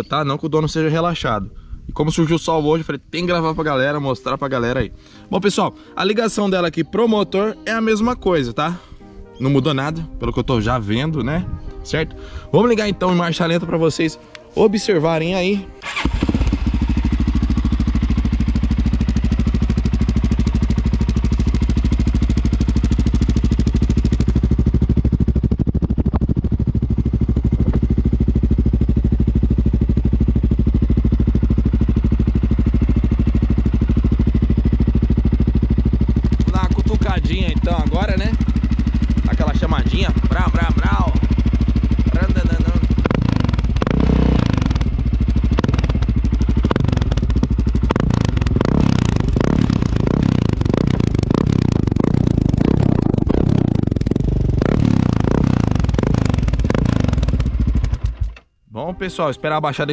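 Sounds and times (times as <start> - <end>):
motorcycle engine idling: 15.8 - 58.5.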